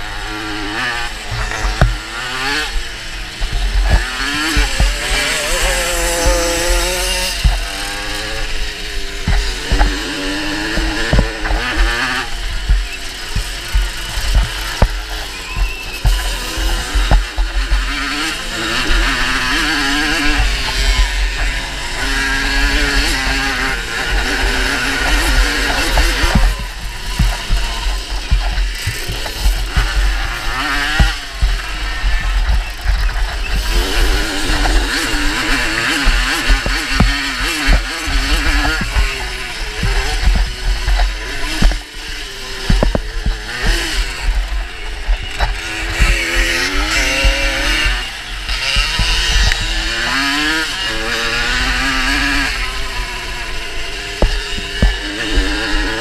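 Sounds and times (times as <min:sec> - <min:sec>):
moped engines revving: 0:00.0 - 0:56.0.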